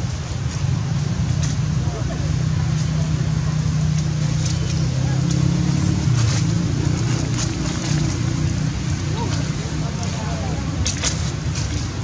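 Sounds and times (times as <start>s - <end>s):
low engine-like hum: 0.0s - 12.0s.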